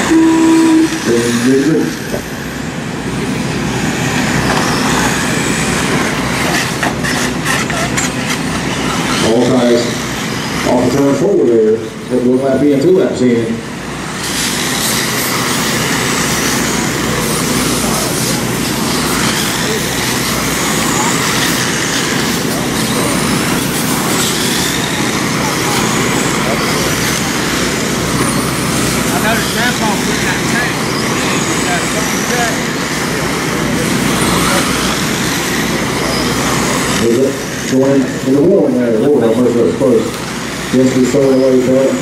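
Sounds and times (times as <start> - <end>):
rc car motors whining: 0.0 - 42.0
steady wash of noise: 0.0 - 42.0.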